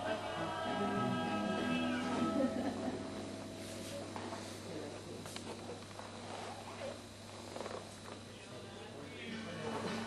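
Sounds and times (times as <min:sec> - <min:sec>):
low hum: 0:00.0 - 0:05.9.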